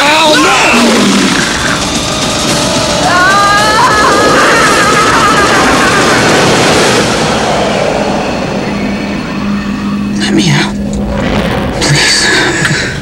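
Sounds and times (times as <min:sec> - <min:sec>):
loud dense rushing noise: 0:00.0 - 0:13.0
low steady tone: 0:07.2 - 0:12.8.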